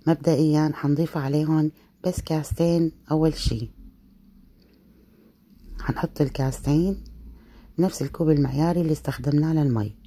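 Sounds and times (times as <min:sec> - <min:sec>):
woman speaking: 0:00.0 - 0:03.9, 0:05.7 - 0:07.2, 0:07.8 - 0:10.0.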